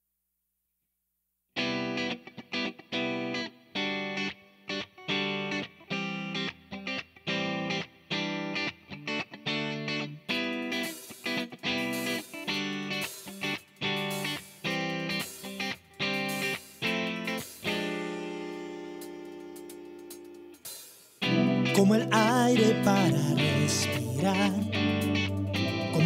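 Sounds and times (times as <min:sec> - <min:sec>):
electric guitar chords: 0:01.6 - 0:26.0.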